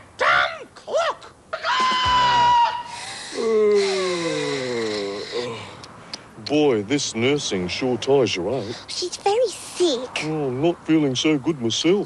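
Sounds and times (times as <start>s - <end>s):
shrill scream: 1.5s - 4.0s.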